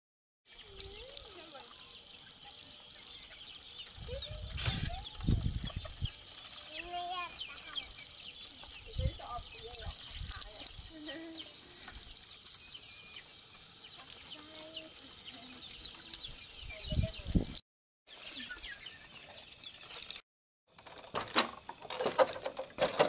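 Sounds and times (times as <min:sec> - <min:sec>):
chicks peeping: 0:00.5 - 0:12.1, 0:12.7 - 0:20.2
chickens clucking: 0:00.6 - 0:12.0.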